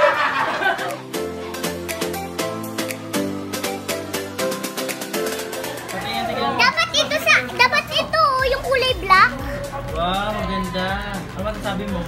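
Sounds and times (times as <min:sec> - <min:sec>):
background music with steady beat: 0:00.0 - 0:12.0
people talking: 0:05.9 - 0:12.0.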